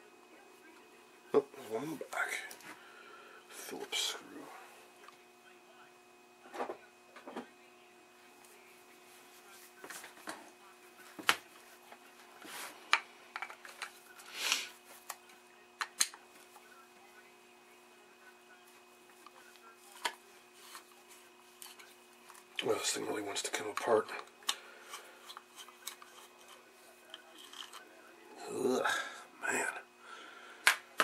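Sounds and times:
faint steady hum: 0.0 - 31.0.

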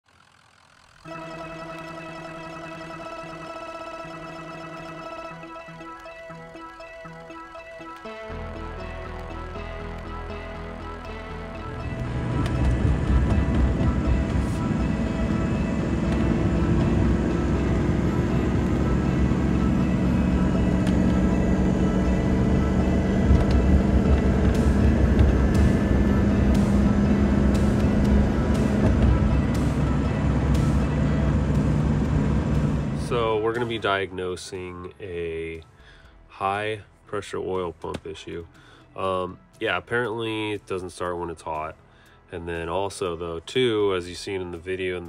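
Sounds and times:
background music: 1.0 - 45.0
diesel truck engine pulling hard: 11.9 - 33.8.

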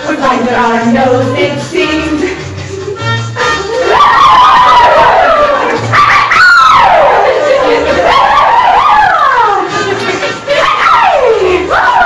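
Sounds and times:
women whooping: 3.7 - 9.7.

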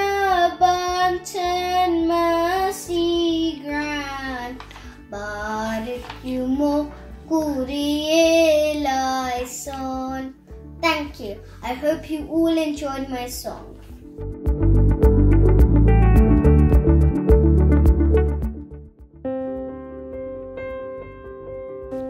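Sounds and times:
girl singing a hymn: 0.0 - 13.7.

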